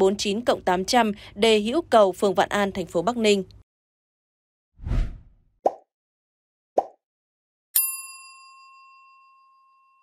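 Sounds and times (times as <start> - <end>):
bell-like chime: 7.8 - 10.0.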